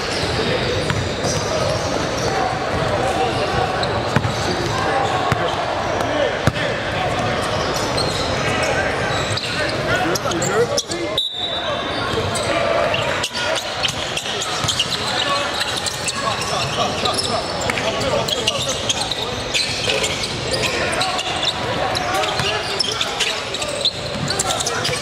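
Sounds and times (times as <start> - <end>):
echoing crowd voices: 0.0 - 25.0.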